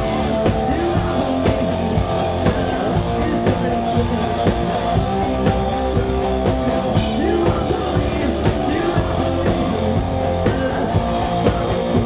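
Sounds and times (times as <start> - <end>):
drums beating: 0.0 - 12.0
loud electric guitars: 0.0 - 12.0.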